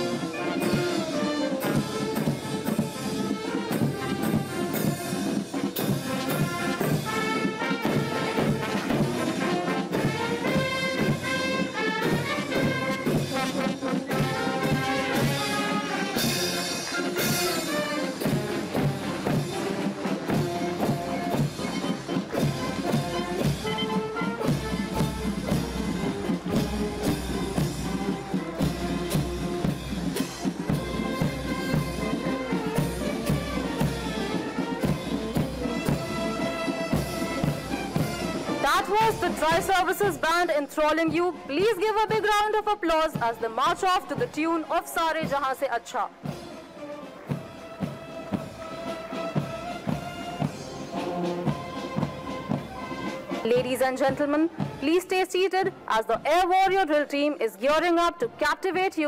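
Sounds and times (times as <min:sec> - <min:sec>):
marching band playing a march: 0:00.0 - 0:57.0.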